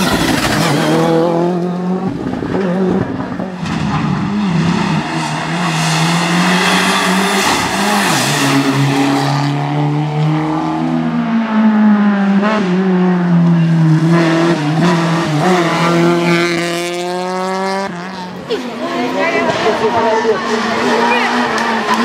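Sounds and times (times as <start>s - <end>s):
rally car engines revving: 0.0s - 22.0s
rush of tyre noise: 0.0s - 22.0s.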